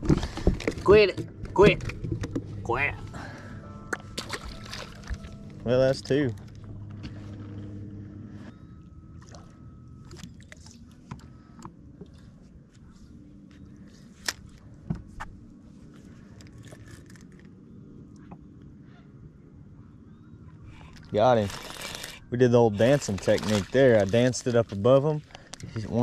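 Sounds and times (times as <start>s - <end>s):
trolling motor hum: 0.0s - 26.0s.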